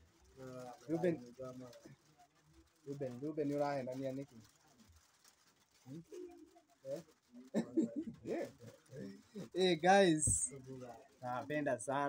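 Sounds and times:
men murmuring and chuckling: 0.6 - 1.5, 5.9 - 11.8.

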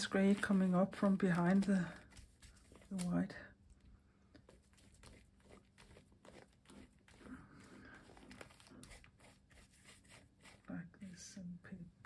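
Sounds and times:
paintbrush strokes on paper: 0.0 - 3.1, 4.4 - 11.4.

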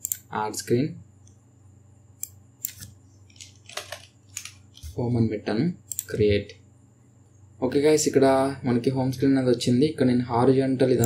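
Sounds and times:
keyboard and mouse clicks: 0.0 - 0.3, 2.2 - 5.0.

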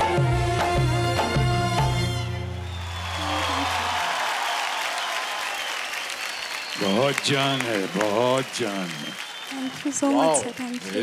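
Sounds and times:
audience applauding: 2.6 - 11.0.

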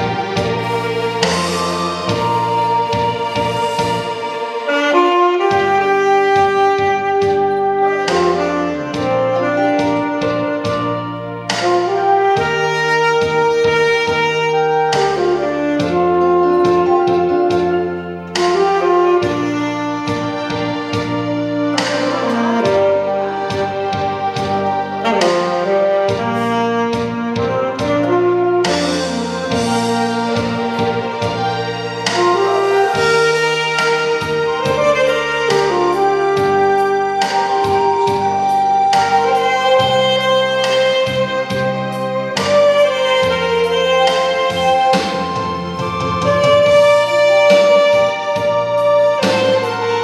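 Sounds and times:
backing track with steady beat: 0.0 - 50.0
saxophone melody: 0.0 - 50.0.

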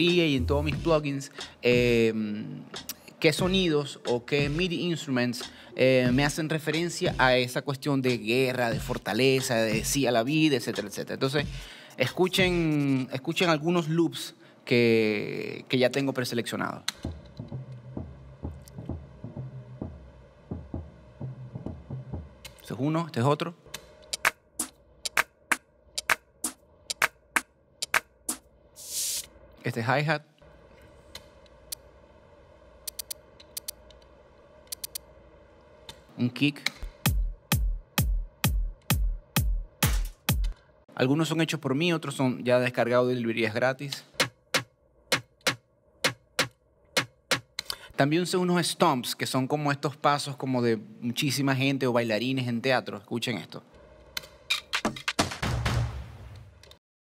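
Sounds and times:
drum loop hits: 0.0 - 2.0, 2.8 - 4.7, 5.4 - 7.4, 8.1 - 10.1, 10.7 - 11.7, 12.4 - 12.7, 16.9 - 22.6, 24.0 - 28.5, 36.8 - 40.6, 44.2 - 47.6, 54.8 - 56.5.

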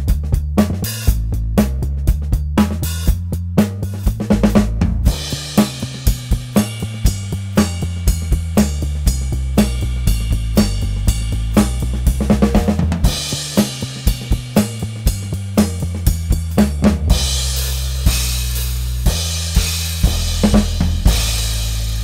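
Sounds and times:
bass drum and snare hits: 0.0 - 22.0.

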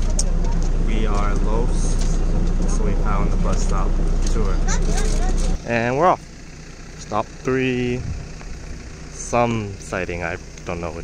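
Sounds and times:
bus engine humming: 0.0 - 11.0.

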